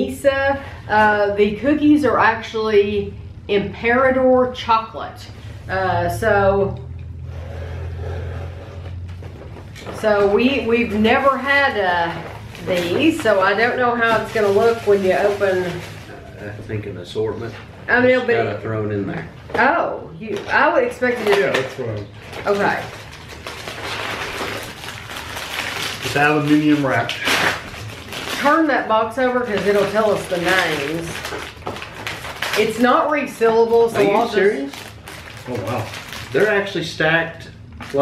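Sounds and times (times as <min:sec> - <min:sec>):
steady low hum: 0:00.0 - 0:38.0
cardboard scraping: 0:07.3 - 0:10.6
crinkling foil: 0:09.0 - 0:16.6, 0:20.3 - 0:37.0, 0:37.8 - 0:38.0.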